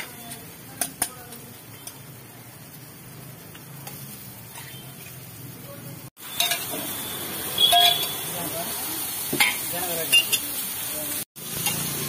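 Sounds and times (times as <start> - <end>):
griddle sizzling: 0.0 - 12.0
metal utensil scraping griddle: 3.8 - 5.2, 11.5 - 12.0.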